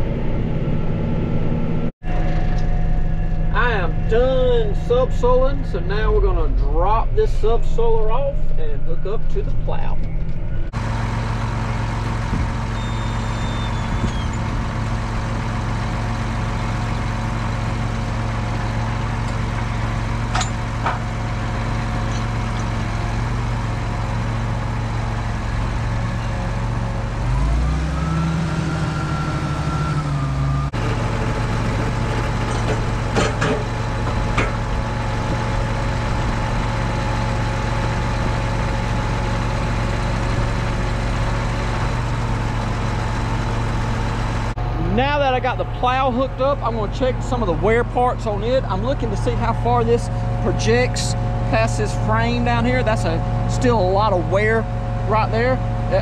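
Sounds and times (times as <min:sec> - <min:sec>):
tractor diesel engine idling: 0:02.0 - 0:27.9, 0:29.2 - 0:56.0.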